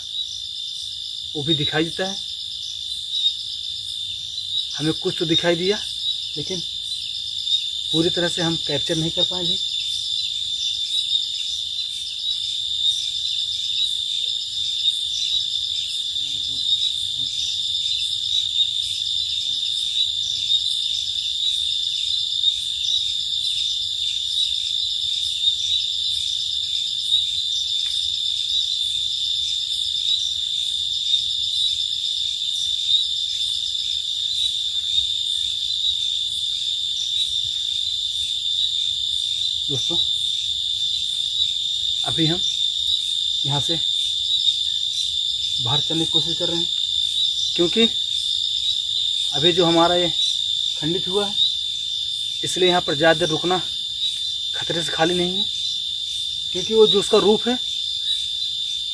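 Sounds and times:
night insects trilling: 0:00.0 - 0:58.9.

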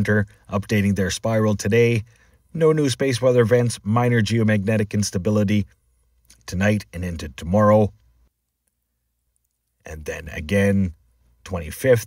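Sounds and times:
man narrating: 0:00.0 - 0:02.0, 0:02.6 - 0:05.7, 0:06.3 - 0:07.9, 0:09.9 - 0:12.0.

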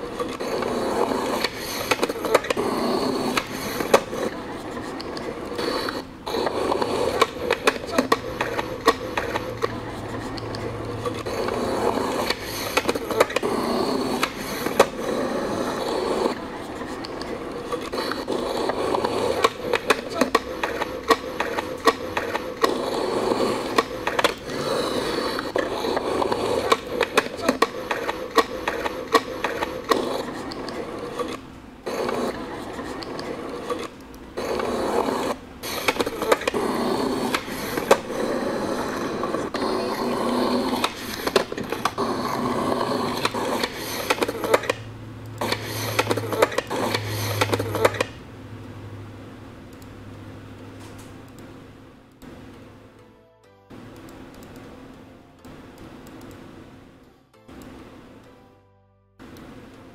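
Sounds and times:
skateboard clacks and knocks: 0:00.0 - 0:48.2
skateboard wheels rolling on concrete: 0:00.0 - 0:49.4.

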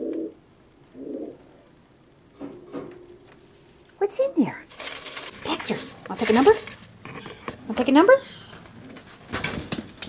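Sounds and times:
pigeon cooing: 0:00.0 - 0:01.8.

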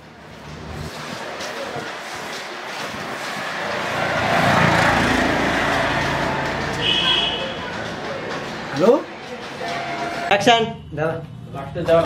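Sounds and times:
motor vehicle passing close by: 0:02.8 - 0:08.7.

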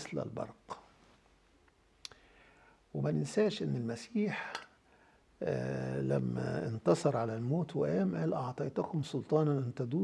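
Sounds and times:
person speaking: 0:00.0 - 0:01.0, 0:02.9 - 0:04.8, 0:05.4 - 0:10.0
soft hiss: 0:00.0 - 0:10.0.

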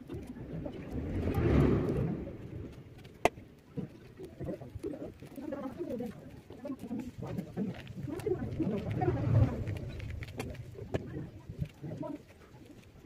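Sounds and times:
short rush of noise: 0:00.6 - 0:03.0.

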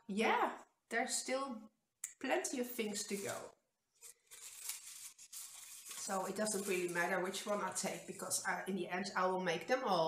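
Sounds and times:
paper slips rustling in bowl: 0:02.8 - 0:08.5.

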